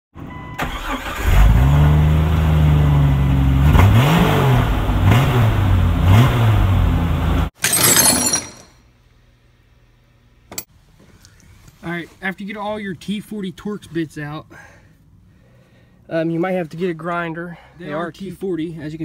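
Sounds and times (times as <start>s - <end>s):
car engine revving: 3.4s - 7.4s.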